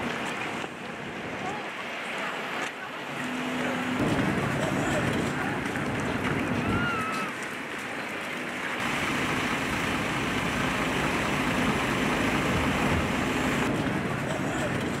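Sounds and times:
outdoor background noise: 0.0 - 15.0.

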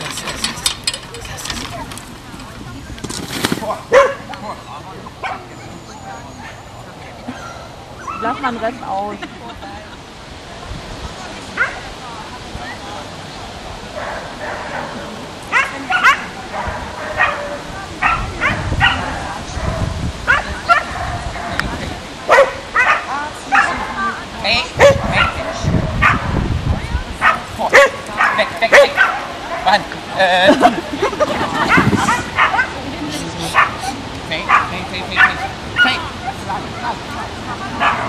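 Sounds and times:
dog barking and yipping: 3.9 - 4.2, 15.5 - 21.6, 22.3 - 23.8, 24.8 - 26.4, 27.2 - 29.7, 31.6 - 32.8, 33.5 - 33.9, 34.5 - 38.0.

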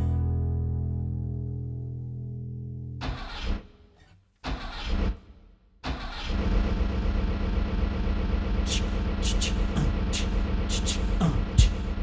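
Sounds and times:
engine cranking and running: 4.4 - 12.0.

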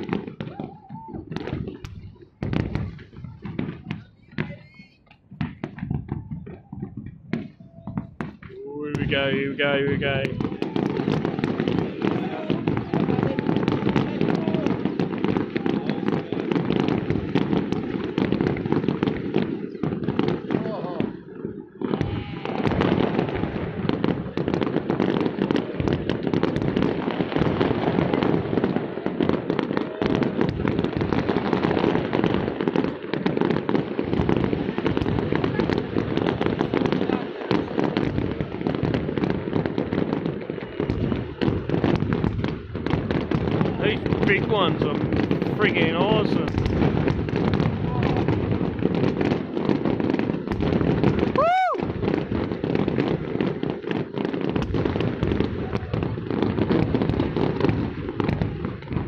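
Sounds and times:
fireworks bursting and crackling: 0.0 - 59.0.

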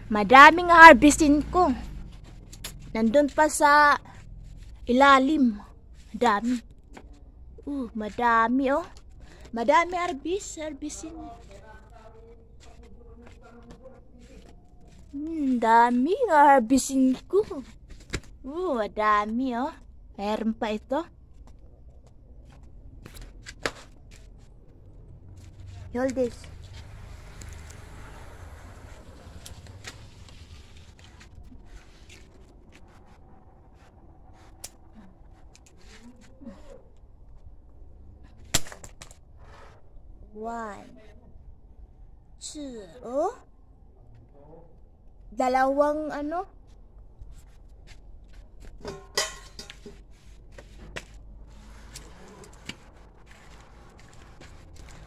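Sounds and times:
light rustling of foliage: 22.4 - 36.9, 46.7 - 55.0
rustling of leaves and vines: 25.3 - 36.6.

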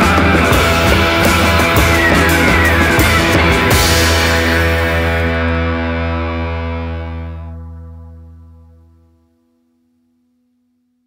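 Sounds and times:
distorted electric guitar chord: 0.0 - 9.4.

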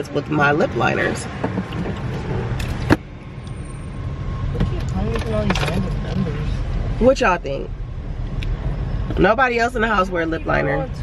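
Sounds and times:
car engine rumble: 0.0 - 11.0
road noise inside car: 0.0 - 11.0.

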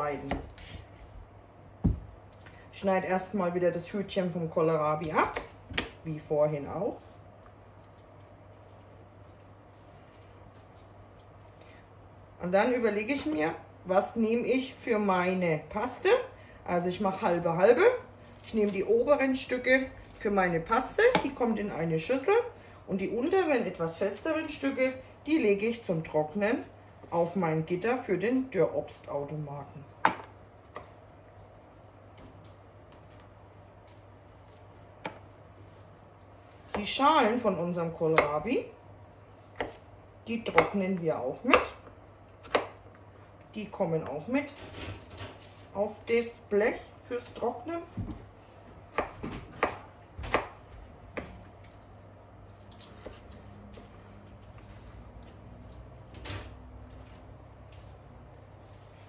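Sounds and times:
low steady hum: 0.0 - 59.0.

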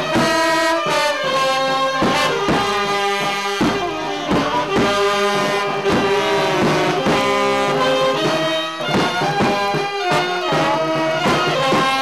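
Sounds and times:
brass band playing held notes: 0.0 - 12.0.

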